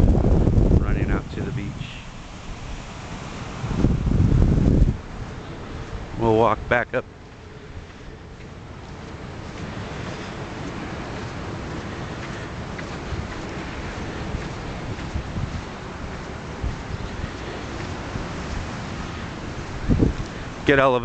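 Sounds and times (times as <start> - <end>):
wind on microphone: 0.0 - 6.8, 7.6 - 21.0.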